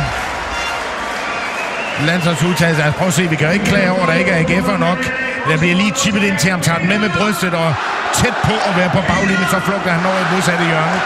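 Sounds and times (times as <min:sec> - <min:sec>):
crowd clapping: 0:00.0 - 0:11.0
crowd voices: 0:00.0 - 0:11.0.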